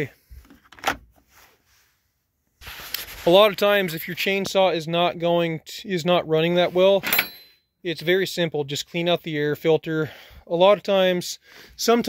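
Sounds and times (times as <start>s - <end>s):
faint rubbing of plastic cover: 2.6s - 3.8s.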